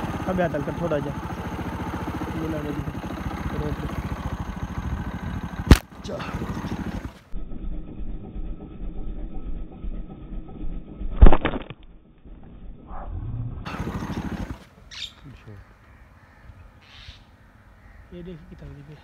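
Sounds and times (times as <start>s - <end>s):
birds calling: 0.0s - 7.3s, 13.7s - 19.0s
slingshot rubber band crack: 5.7s - 5.9s.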